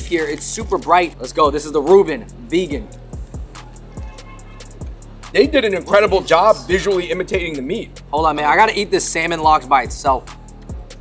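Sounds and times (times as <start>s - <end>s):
background music bass line: 0.0s - 11.0s
kick drum beats: 3.2s - 6.3s.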